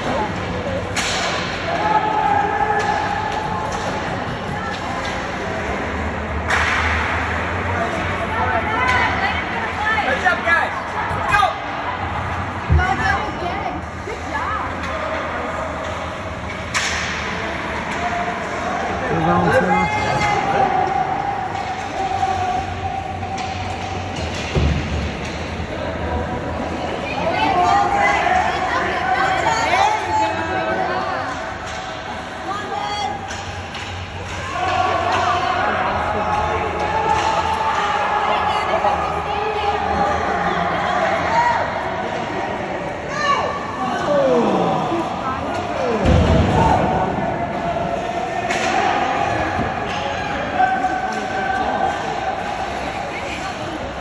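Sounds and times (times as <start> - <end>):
arena noise: 0.0 - 54.0
spectators' voices: 0.0 - 54.0
sticks hitting puck: 47.5 - 52.8.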